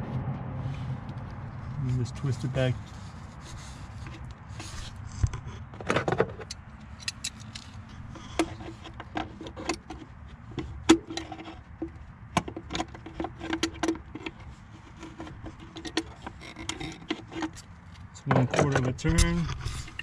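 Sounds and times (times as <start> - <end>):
pliers clicking and scraping: 6.2 - 10.0.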